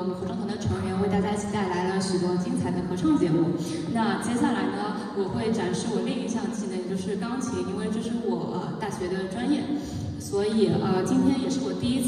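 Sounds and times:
woman's voice: 0.0 - 12.0.

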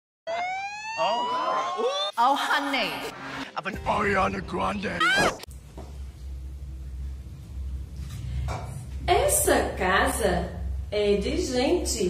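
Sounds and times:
excited voices: 1.0 - 2.9, 4.8 - 5.4.

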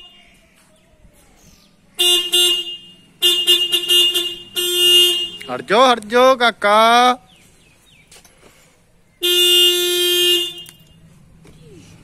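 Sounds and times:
vehicle horn honk: 2.0 - 5.7, 9.2 - 11.1.

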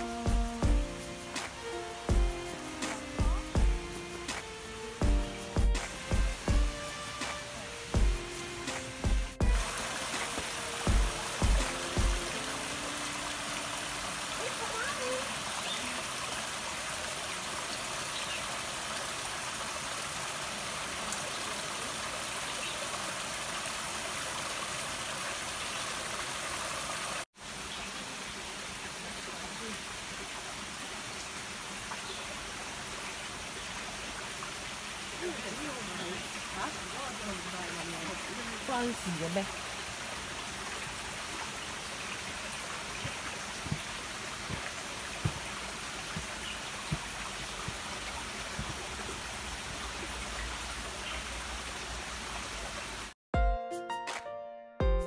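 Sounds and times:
music: 0.0 - 14.2, 53.3 - 55.0
stream trickling over stones: 0.0 - 53.2
low thumps: 5.0 - 6.8.

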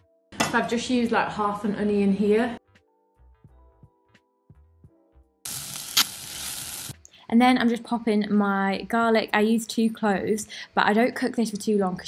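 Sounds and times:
faint background music: 0.0 - 12.0
onion sizzling in hot oil: 5.4 - 7.0.

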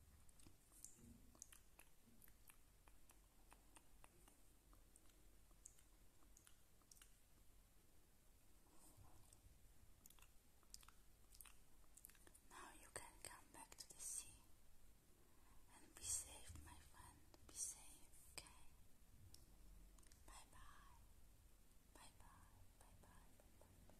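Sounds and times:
close-up whispering: 10.7 - 14.5, 15.5 - 18.8, 20.0 - 21.1, 21.9 - 23.9.

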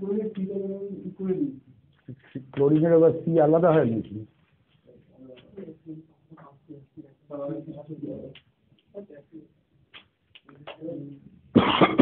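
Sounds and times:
person coughing harshly: 11.6 - 12.0.

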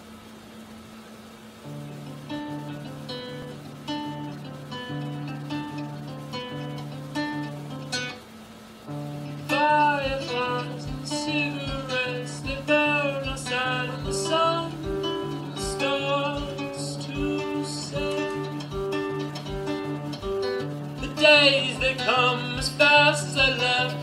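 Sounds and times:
plucked guitar: 1.6 - 24.0.

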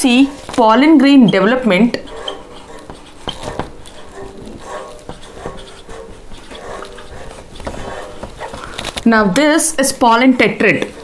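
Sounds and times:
marker squeaking on whiteboard: 0.0 - 9.6.

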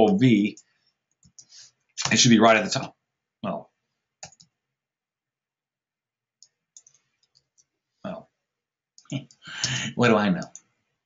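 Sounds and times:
computer mouse and keyboard clicks: 0.5 - 2.2, 4.2 - 4.6, 6.4 - 7.7.

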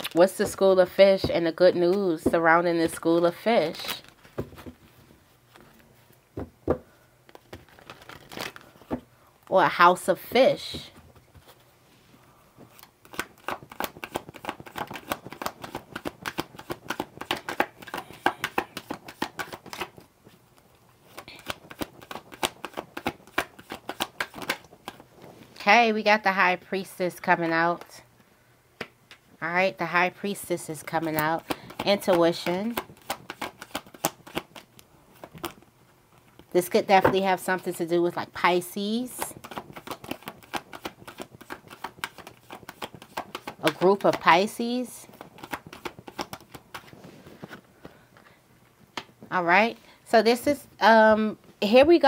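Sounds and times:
cards being shuffled by hand: 7.3 - 9.0, 12.6 - 25.6, 30.9 - 36.5, 39.0 - 48.0.

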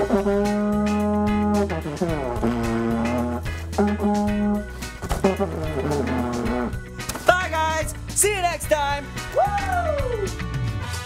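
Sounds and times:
vuvuzela blasts: 0.0 - 6.8.

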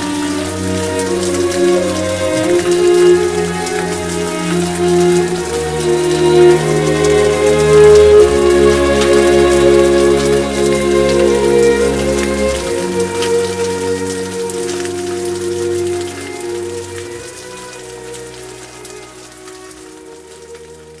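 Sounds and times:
rain pattering: 0.0 - 21.0
soft sustained music: 0.0 - 21.0.

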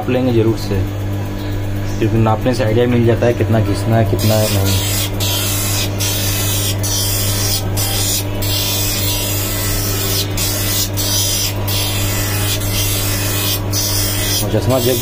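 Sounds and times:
machine motor humming: 0.0 - 15.0
grinding wheel hissing against lens: 3.9 - 15.0.

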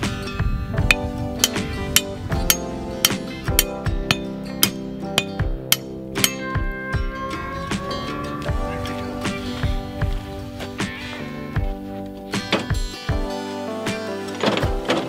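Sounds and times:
acoustic guitar music: 0.0 - 15.0
sledgehammer striking steel rebar: 0.8 - 8.8.

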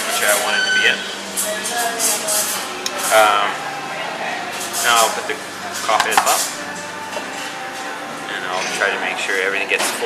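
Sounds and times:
indistinct voices: 0.0 - 9.8
clatter of dishes: 5.8 - 6.5.

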